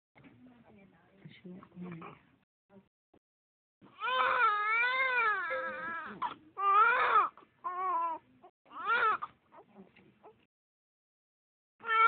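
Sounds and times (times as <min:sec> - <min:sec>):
baby crying: 0:03.9 - 0:09.6, 0:11.8 - 0:12.0.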